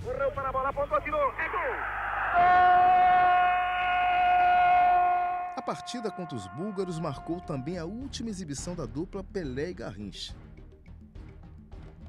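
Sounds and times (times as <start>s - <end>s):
commentator's drawn-out goal cry: 1.3s - 7.8s.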